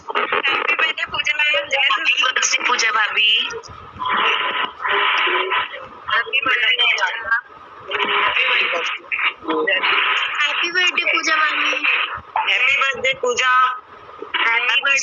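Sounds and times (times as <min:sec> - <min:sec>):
people talking over video call: 0:00.0 - 0:15.0.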